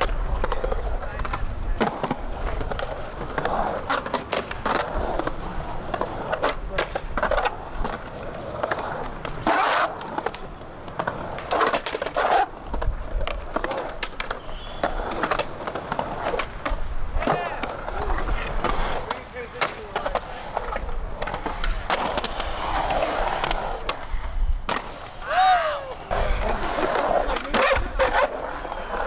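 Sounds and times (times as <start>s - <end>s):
skateboard clacking on coping: 0.0s - 29.0s
skateboard wheels rolling on concrete: 0.0s - 29.0s
person calling out: 25.2s - 26.1s.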